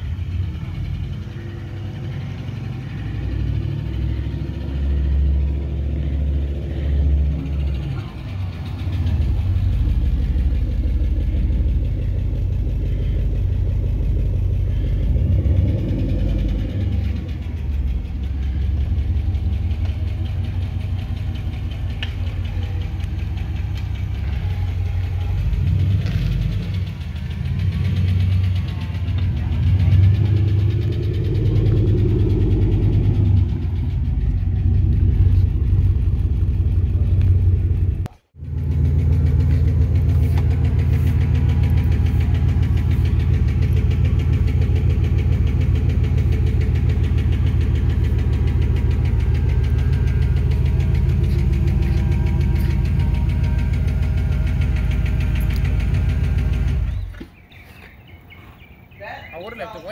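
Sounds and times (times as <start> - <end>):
car engine exhaust rumble: 0.0 - 59.6.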